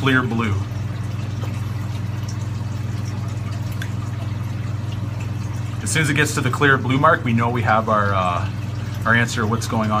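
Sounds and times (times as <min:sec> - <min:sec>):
aquarium equipment humming: 0:00.0 - 0:10.0.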